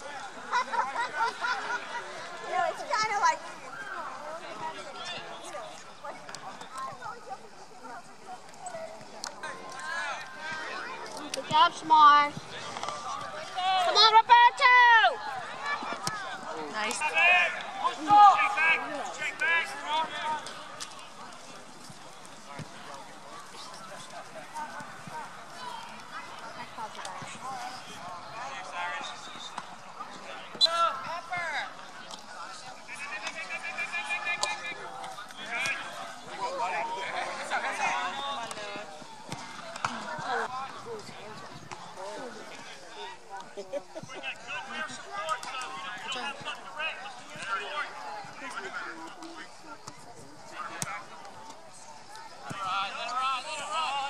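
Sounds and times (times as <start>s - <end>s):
spectators talking: 0.0s - 54.0s.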